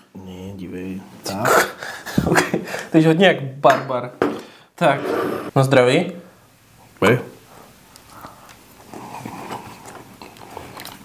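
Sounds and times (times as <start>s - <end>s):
people chewing: 7.5s - 11.0s
wet mouth sounds: 7.9s - 11.0s.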